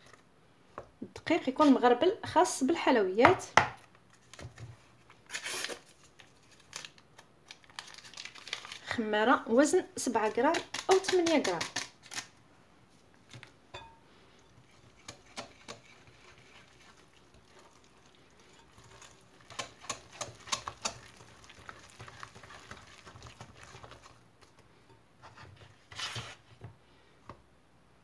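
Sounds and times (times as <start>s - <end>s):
whisk stirring batter in glass bowl: 14.6s - 24.2s.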